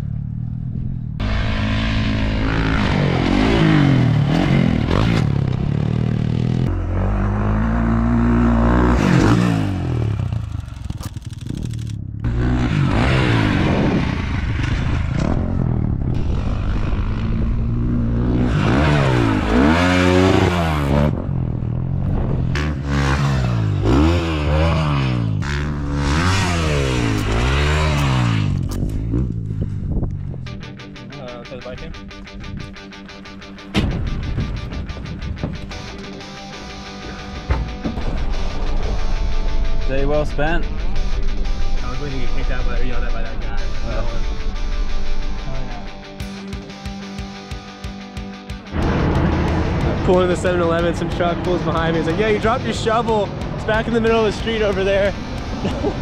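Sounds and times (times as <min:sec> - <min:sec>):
dirt bike engines revving: 0:00.0 - 0:31.4, 0:39.6 - 0:56.0.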